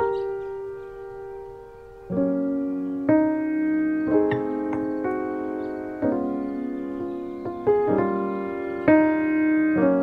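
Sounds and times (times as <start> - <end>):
soft piano chord ringing: 0.0 - 10.0.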